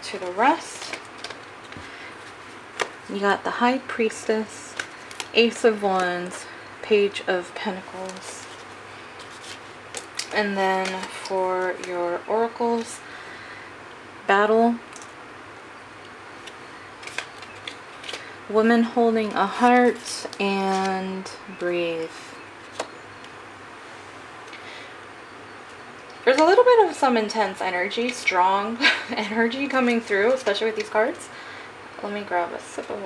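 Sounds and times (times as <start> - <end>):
cards being handled: 0.1 - 3.1, 4.6 - 6.5, 7.7 - 12.0, 16.4 - 18.3, 19.2 - 21.2.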